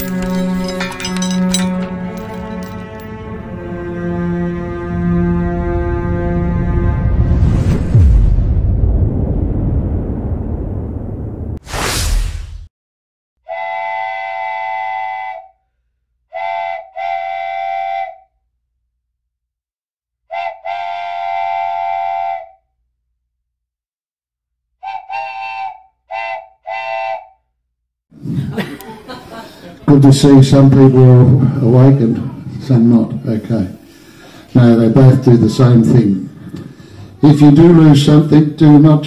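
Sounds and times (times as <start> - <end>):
multi-note train whistle: 13.4 - 15.6, 16.3 - 18.4, 20.3 - 22.7, 24.8 - 27.5.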